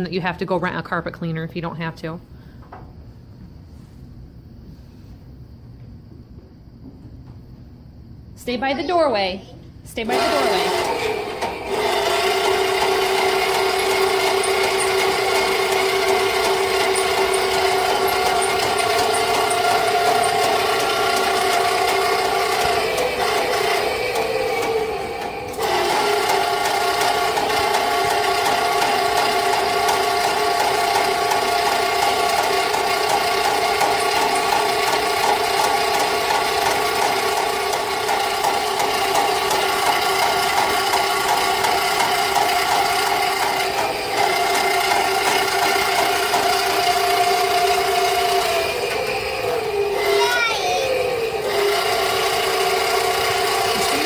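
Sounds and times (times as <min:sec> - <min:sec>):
sewer snake motor hum: 0:10.0 - 0:54.0.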